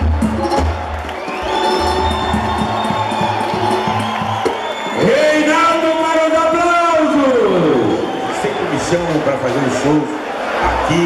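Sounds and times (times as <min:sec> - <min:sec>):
live band playing: 0:00.0 - 0:05.2
crowd cheering: 0:00.0 - 0:11.0.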